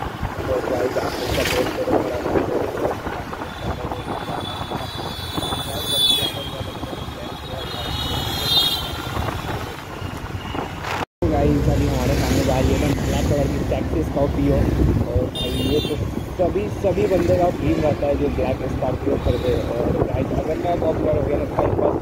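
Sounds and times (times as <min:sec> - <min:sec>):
road and wind noise: 0:00.0 - 0:22.0.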